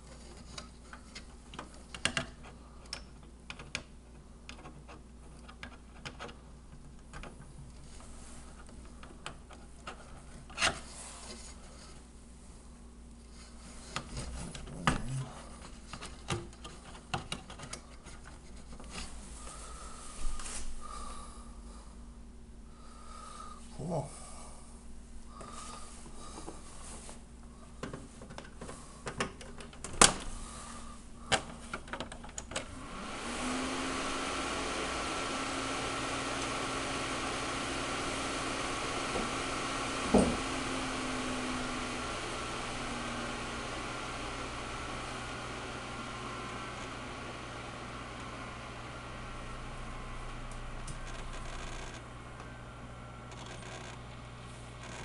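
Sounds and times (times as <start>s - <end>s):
fan running: 0.0s - 55.0s.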